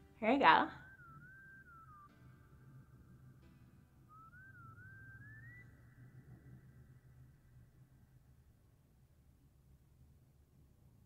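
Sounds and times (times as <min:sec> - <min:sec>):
faint thin high tone: 0:00.0 - 0:08.1.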